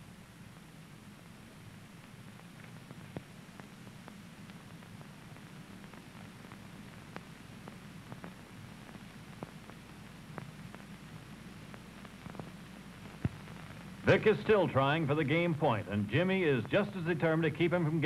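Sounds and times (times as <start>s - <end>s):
faint low hum: 0.0s - 18.0s
soft clicks and pops: 2.4s - 14.0s.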